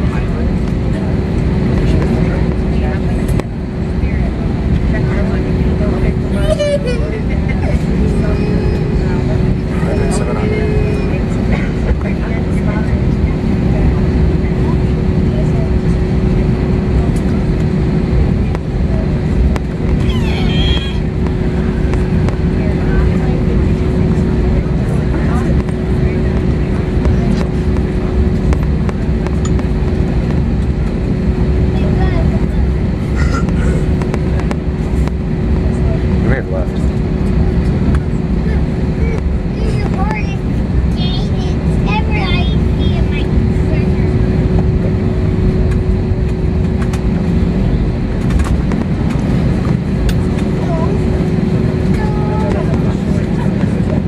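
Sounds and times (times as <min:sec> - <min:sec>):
aircraft cabin engine rumble: 0:00.0 - 0:54.0
faint voices: 0:00.0 - 0:54.0.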